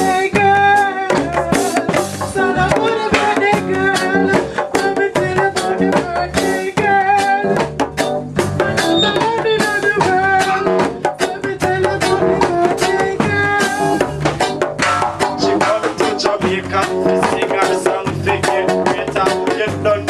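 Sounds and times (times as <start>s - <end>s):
hand drum rhythm: 0.0s - 20.0s
upright bass plucked: 0.0s - 20.0s
sustained melody line: 2.2s - 19.2s.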